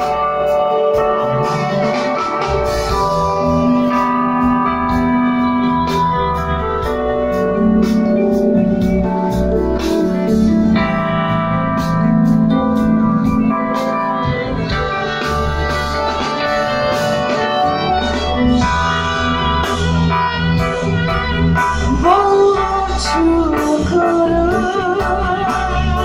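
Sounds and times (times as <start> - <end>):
keyboard organ chords: 0.0 - 26.0
live band playing: 0.0 - 26.0
person singing: 14.1 - 26.0.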